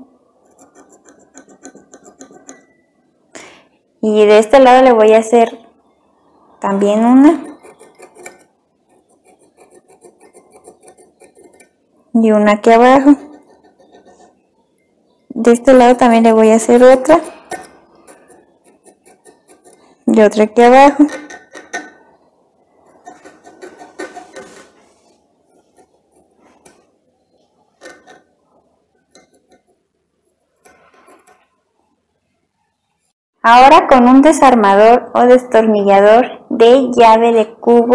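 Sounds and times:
metal tool scratching metal: 0.4s - 2.8s, 7.2s - 11.8s, 12.9s - 14.5s, 16.0s - 22.2s, 22.8s - 29.8s, 30.5s - 31.6s
metal clicking on metal: 20.9s - 22.0s.

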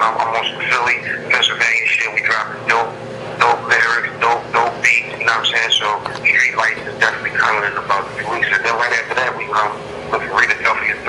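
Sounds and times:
person talking over telephone: 0.0s - 11.0s.

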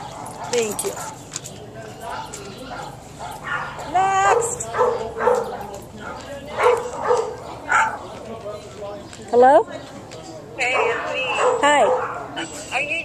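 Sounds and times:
dogs barking and yipping: 0.0s - 8.2s, 10.6s - 12.8s
dog yelping: 2.1s - 8.0s, 10.6s - 12.5s.

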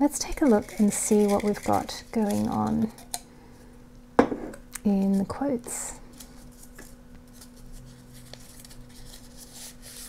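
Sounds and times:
glass jar set down on wooden table: 4.2s - 4.6s.

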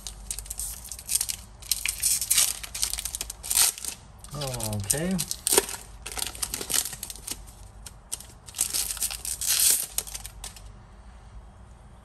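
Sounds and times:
foil wrapper crinkling and tearing: 0.0s - 10.7s.

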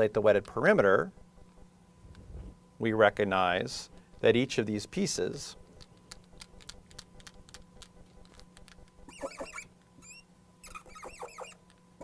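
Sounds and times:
marker squeaking on glass: 9.1s - 11.6s.

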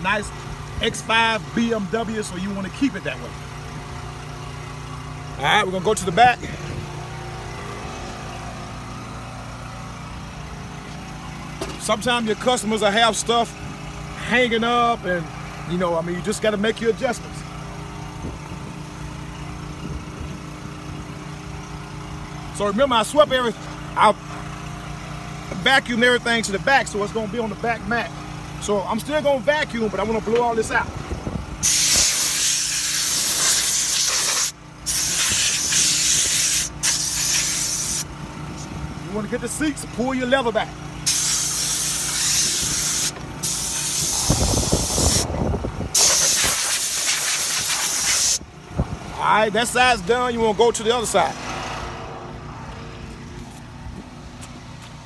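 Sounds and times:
motor running with low hum: 0.0s - 51.0s
compressed air blow gun hissing: 31.6s - 38.1s, 41.0s - 45.3s, 45.9s - 48.4s.

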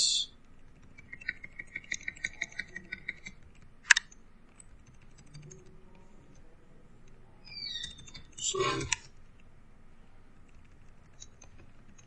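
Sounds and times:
keyboard keys tapping: 0.5s - 6.4s.

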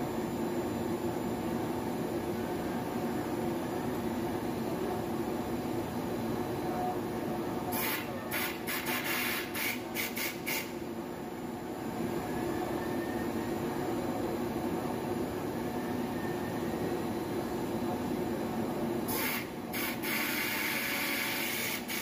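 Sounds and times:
blowing machine droning: 11.8s - 22.0s.

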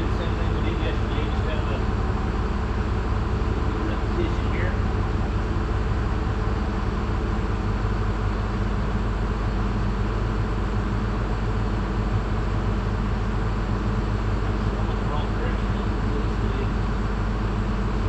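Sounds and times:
low mechanical motor drone: 0.0s - 18.0s.

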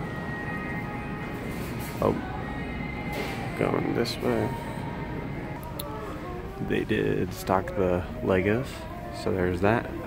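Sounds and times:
faint background music: 0.0s - 10.0s
steady hum: 0.0s - 10.0s.

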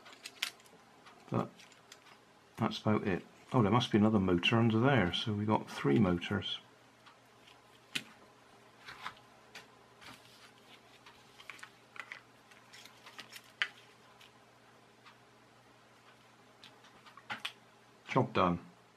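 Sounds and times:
plastic toy parts clicking: 0.0s - 2.2s, 11.1s - 14.3s.

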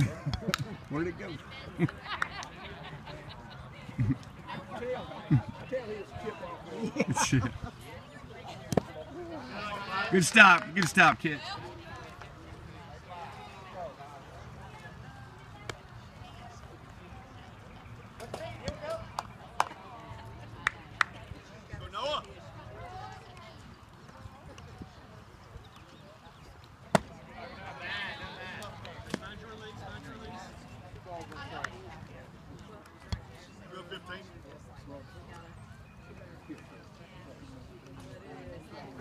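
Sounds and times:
distant voices chattering: 0.0s - 39.0s.

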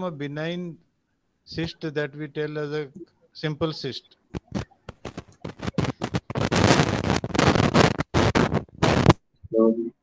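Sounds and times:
crackling scraping microphone noise: 4.3s - 9.2s.

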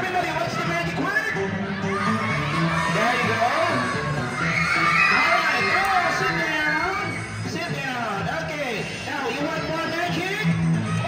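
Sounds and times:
background music with low notes: 0.0s - 11.0s
children shouting and cheering: 0.2s - 7.5s, 10.4s - 11.0s.

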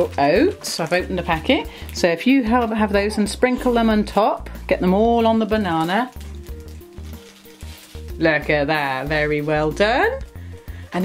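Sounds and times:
plastic bag crinkling: 0.0s - 2.5s, 3.6s - 9.8s
soft background music: 0.0s - 11.0s
oats pouring patter: 4.4s - 9.8s.

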